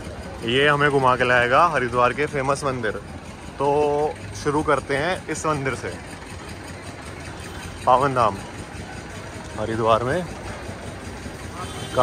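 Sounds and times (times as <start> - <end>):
street noise: 0.0 - 12.0
vehicle engine idling: 0.0 - 12.0.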